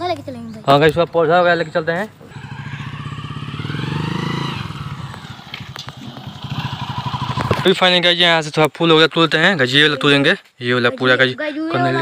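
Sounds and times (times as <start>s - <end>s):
small motorcycle engine passing: 1.4s - 8.3s.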